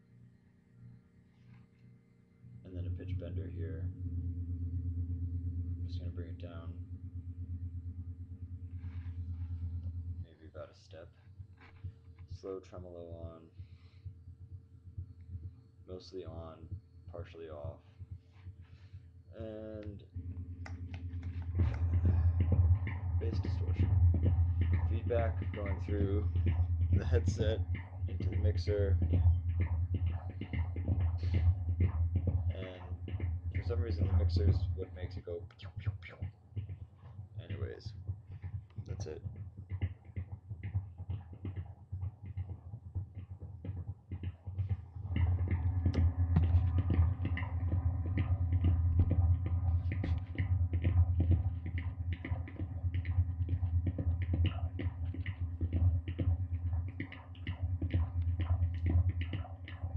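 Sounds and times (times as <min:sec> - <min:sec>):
feedback drone hum: 0:00.0 - 0:59.9.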